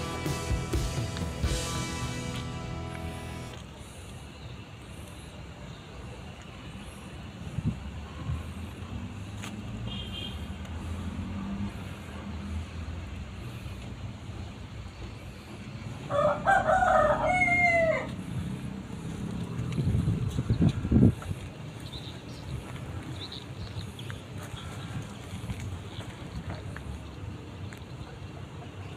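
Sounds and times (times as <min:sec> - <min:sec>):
rooster crowing: 0:16.0 - 0:18.2.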